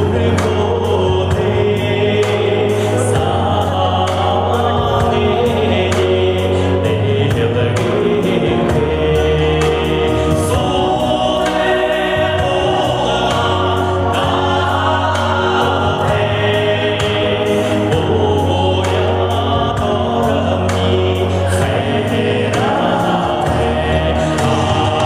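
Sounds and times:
backing track with bass and beat: 0:00.0 - 0:25.0
man singing pop song: 0:00.0 - 0:25.0.

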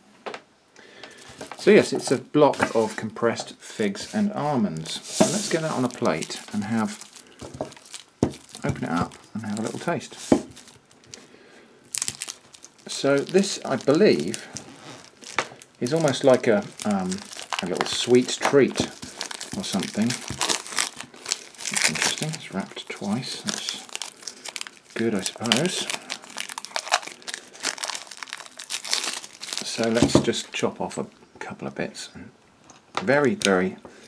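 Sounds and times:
cling film rustling: 0:03.8 - 0:11.3, 0:11.9 - 0:30.6
plastic crinkle: 0:03.8 - 0:30.6.

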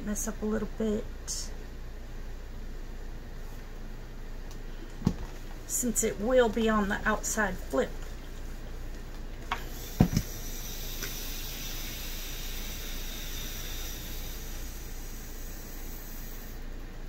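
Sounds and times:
steam iron hissing: 0:09.6 - 0:16.7.

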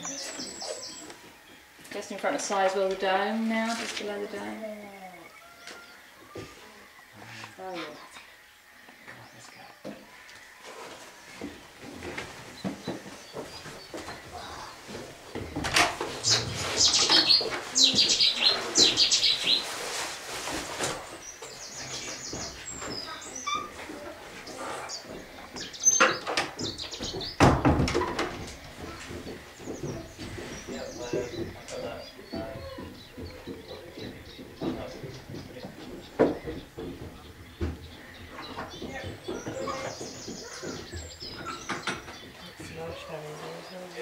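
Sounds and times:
small birds chirping: 0:00.0 - 0:44.0
low voices: 0:14.1 - 0:15.3, 0:21.7 - 0:25.8.

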